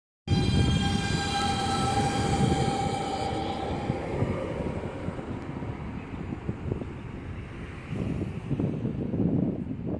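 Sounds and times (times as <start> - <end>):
high-pitched whine: 0.3 - 6.4
tram wheels rumbling on rails: 0.3 - 9.9.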